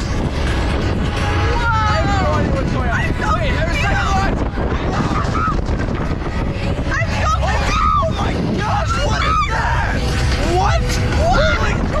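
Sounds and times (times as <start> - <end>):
low rumble of roller coaster: 0.0 - 12.0
wind rushing over microphone: 0.0 - 12.0.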